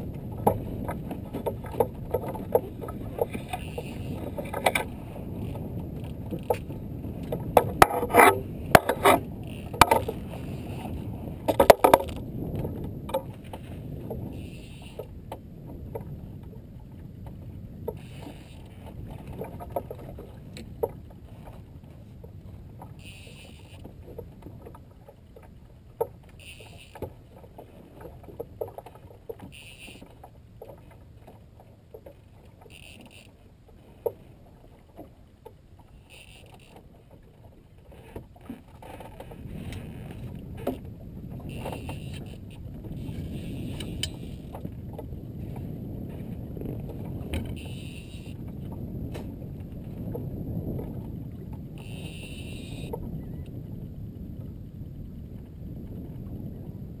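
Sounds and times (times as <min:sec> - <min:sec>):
water sloshing against boat hull: 0:00.0 - 0:57.0
wind rumble on microphone: 0:00.0 - 0:57.0.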